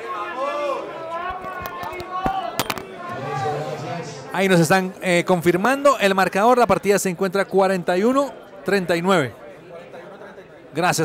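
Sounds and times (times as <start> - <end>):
spectators talking: 0.0 - 11.0.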